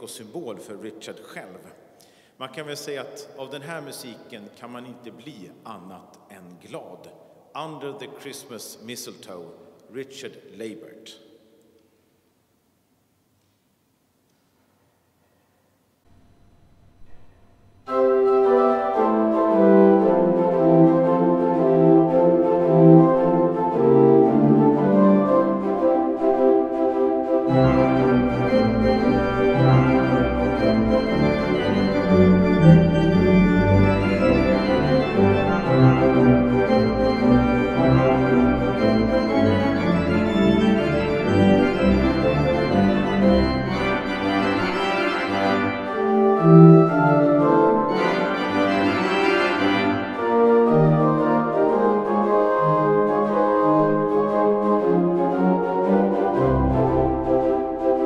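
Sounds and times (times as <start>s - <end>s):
church organ chords: 16.1s - 58.0s
organ pedal bass: 16.1s - 58.0s.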